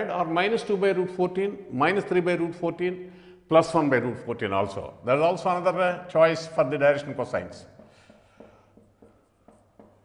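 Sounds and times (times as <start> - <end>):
marker scratching on whiteboard: 7.5 - 10.0.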